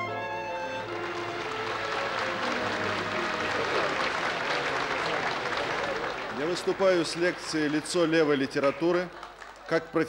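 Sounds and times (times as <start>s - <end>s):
soft violin music: 0.0s - 5.5s
crowd applauding: 0.0s - 10.0s.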